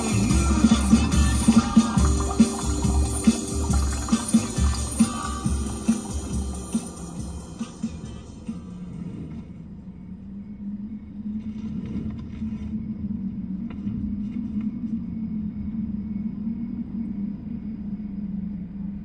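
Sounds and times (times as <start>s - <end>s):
constant hum: 0.0s - 19.0s
low rumble: 0.0s - 19.0s.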